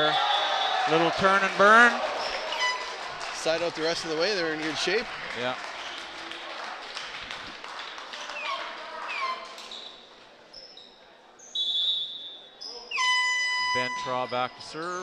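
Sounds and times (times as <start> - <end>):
crowd chatter: 0.0 - 15.0
shoe squeaks: 8.4 - 15.0.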